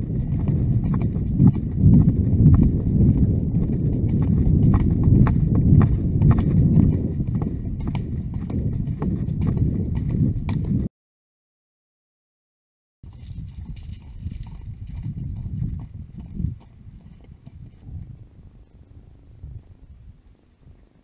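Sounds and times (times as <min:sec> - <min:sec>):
horse hooves clip-clopping on dirt: 0:00.0 - 0:10.9, 0:13.0 - 0:18.1
low rumble of riding movement: 0:00.0 - 0:10.9, 0:13.1 - 0:21.0.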